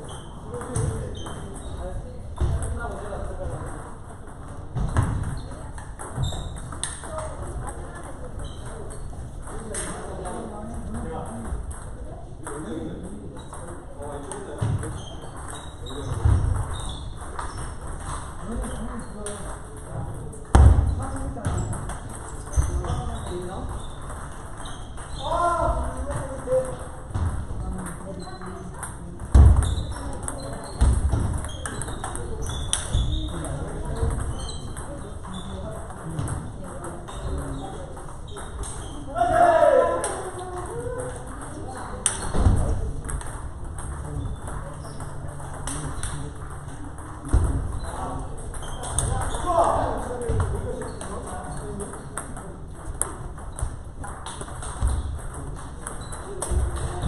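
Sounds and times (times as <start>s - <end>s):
reverberant hall background: 0.0s - 57.0s
table tennis ball clicks: 27.8s - 38.9s, 41.0s - 49.4s, 50.3s - 57.0s.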